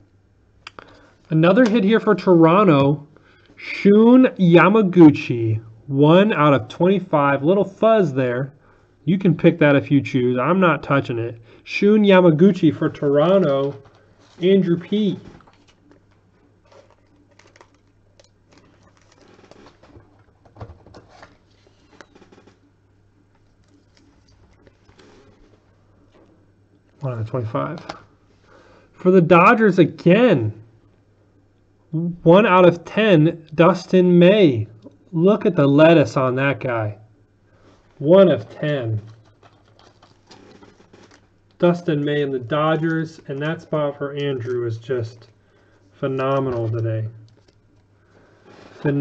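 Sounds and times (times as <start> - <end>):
steady low hum: 0.0 - 49.0
plastic packaging rustling: 12.8 - 27.1, 38.9 - 43.5, 45.2 - 49.0.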